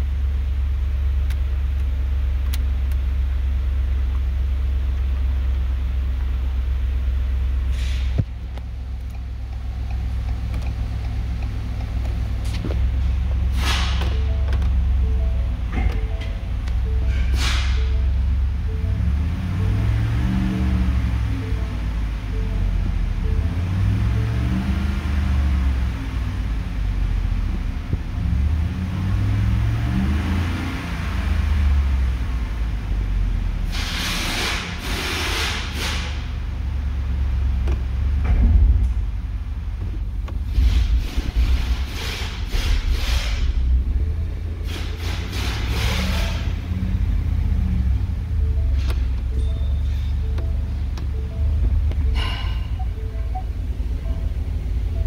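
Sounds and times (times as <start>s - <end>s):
truck engine revving: 7.6s - 39.1s, 40.4s - 55.0s.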